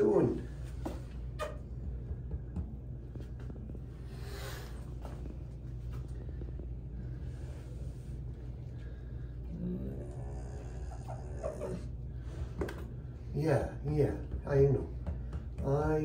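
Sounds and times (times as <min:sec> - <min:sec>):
steady low hum: 0:00.0 - 0:16.0
dog breathing: 0:03.2 - 0:13.4
dog making throaty sounds: 0:09.5 - 0:12.0.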